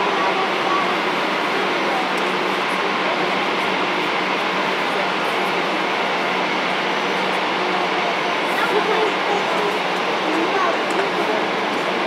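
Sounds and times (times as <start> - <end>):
jet engines at taxi power: 0.0 - 12.0.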